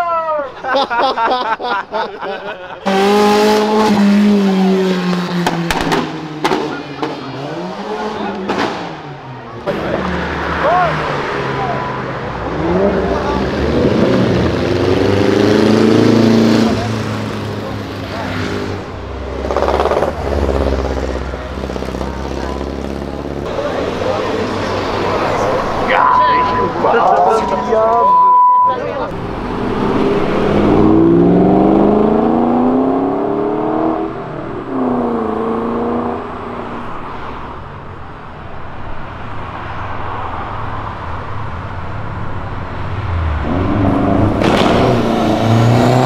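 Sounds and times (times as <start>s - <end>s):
cars driving past: 1.7s - 46.0s
car engines revving: 2.4s - 46.0s
people's voices: 6.4s - 14.2s, 16.2s - 29.5s.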